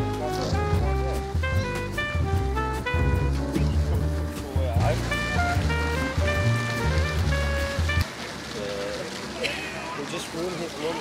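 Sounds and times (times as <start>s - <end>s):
mellow music with bass line: 0.0s - 8.0s.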